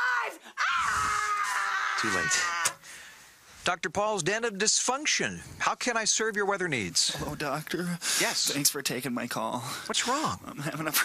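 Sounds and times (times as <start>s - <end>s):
man shouting: 0.0s - 2.8s
woman screaming: 0.0s - 2.8s.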